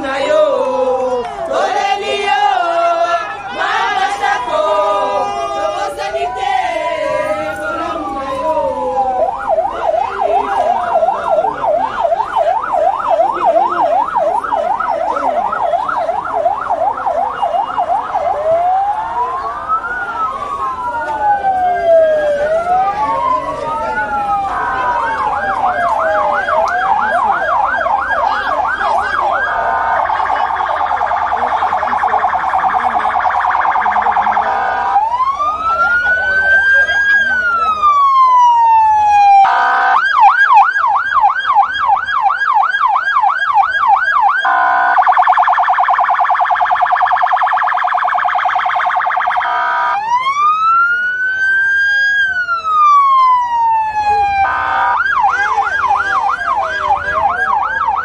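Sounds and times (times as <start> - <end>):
electronic vehicle siren: 0.0 - 58.0.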